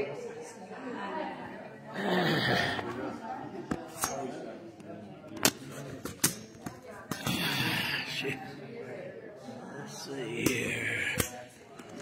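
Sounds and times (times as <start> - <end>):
voices in the room: 0.0 - 12.0.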